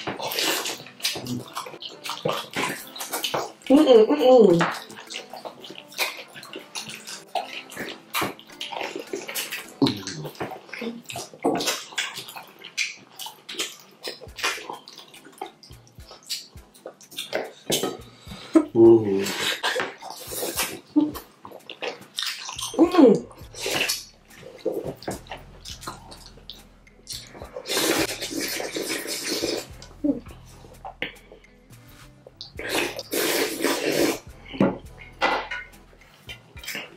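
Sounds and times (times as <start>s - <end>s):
mouths chewing wetly: 0.0s - 35.2s, 35.9s - 36.9s.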